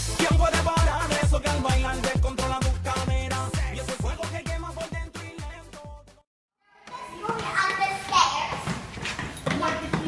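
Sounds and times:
background music: 0:00.0 - 0:06.2
children chattering: 0:06.7 - 0:08.8, 0:09.5 - 0:10.0.

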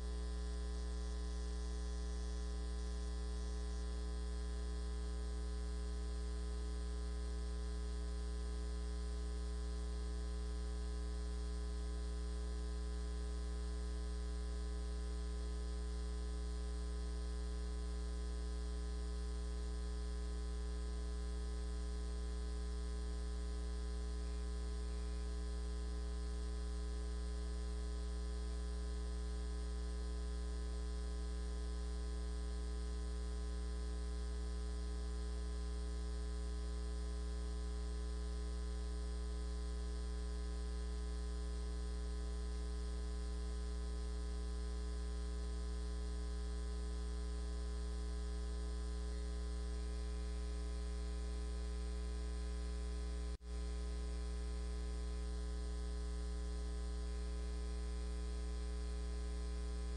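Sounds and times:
electrical mains hum: 0:00.0 - 0:04.1, 0:22.6 - 0:27.5, 0:49.1 - 0:50.4.

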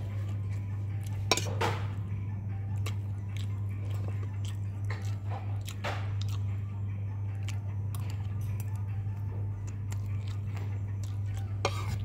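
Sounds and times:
steady low hum: 0:00.0 - 0:12.0
person chewing food: 0:02.5 - 0:12.0.

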